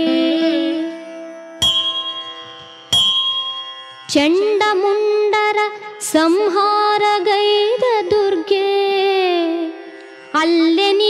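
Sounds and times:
bell ringing: 0:01.4 - 0:05.1.

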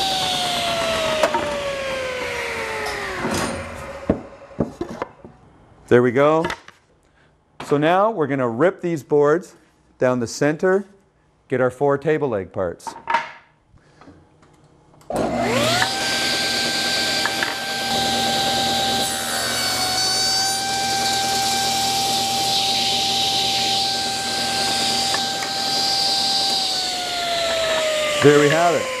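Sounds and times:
table saw cutting wood: 0:00.0 - 0:04.7, 0:15.1 - 0:29.0.

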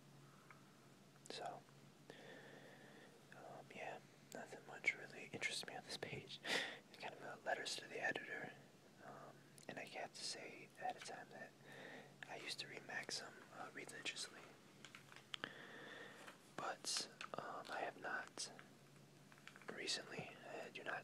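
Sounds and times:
faint low hum: 0:00.0 - 0:21.0
person whispering: 0:01.3 - 0:01.6, 0:03.3 - 0:06.4, 0:07.0 - 0:11.6, 0:12.2 - 0:14.6, 0:16.6 - 0:18.6, 0:19.7 - 0:21.0.

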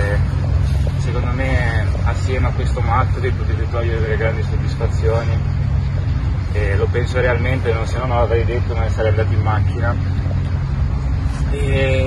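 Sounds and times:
loud steady low rumble: 0:00.0 - 0:12.0.

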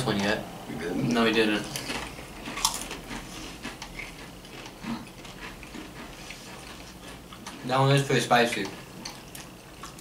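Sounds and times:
potato crisps being chewed: 0:01.3 - 0:10.0.

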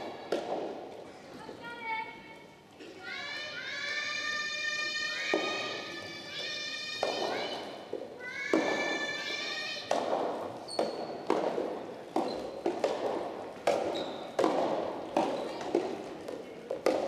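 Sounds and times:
ball bouncing on hall floor: 0:00.0 - 0:01.1, 0:05.2 - 0:17.0.

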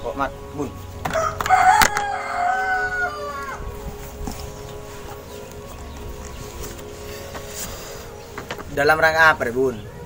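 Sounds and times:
rooster crowing: 0:01.1 - 0:03.8.

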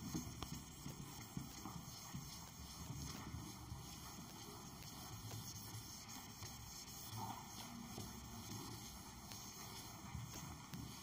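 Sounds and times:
duster scrubbing whiteboard: 0:00.0 - 0:11.0.

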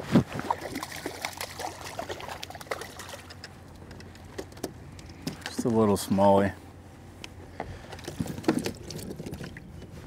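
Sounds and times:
light water noise: 0:00.3 - 0:04.2, 0:07.8 - 0:10.0
knocks and rattles against kayak hull: 0:08.0 - 0:09.6.

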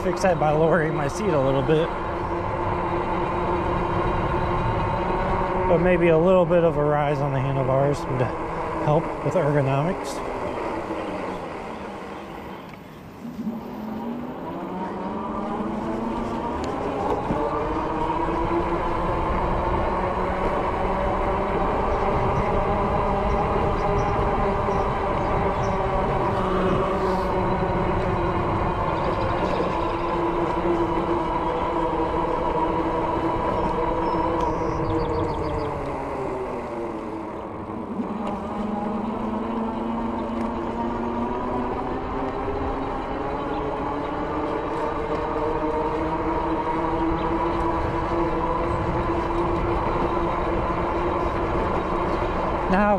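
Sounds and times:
e-bike tyres and drive whirring: 0:00.0 - 0:52.9
low rumble: 0:00.0 - 0:52.9.

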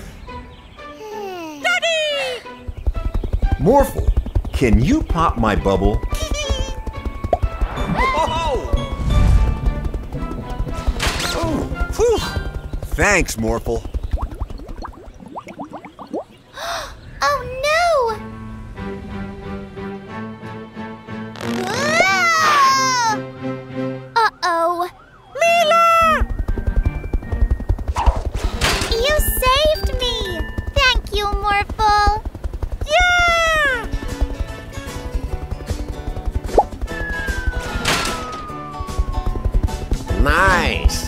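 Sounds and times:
cartoon bubble bloops: 0:14.2 - 0:16.4
cartoon creature call: 0:21.5 - 0:23.2.

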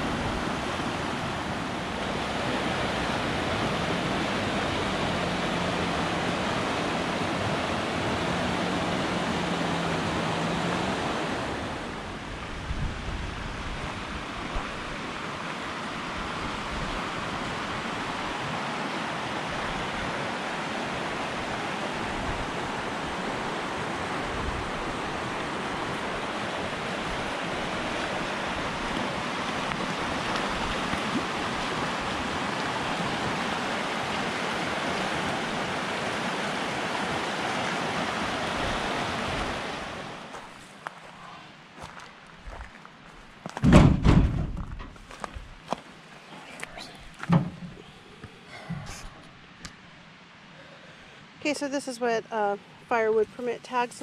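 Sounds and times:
creek rushing over rocks: 0:00.0 - 0:43.7.

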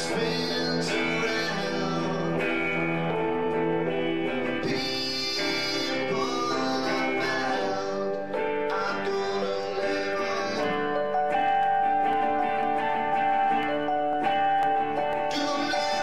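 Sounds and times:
acoustic guitar: 0:00.0 - 0:16.0
person singing: 0:00.0 - 0:16.0.

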